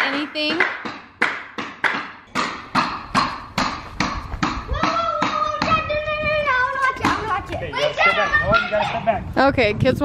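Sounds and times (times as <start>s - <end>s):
hammer knocking on wood: 0.0s - 5.8s.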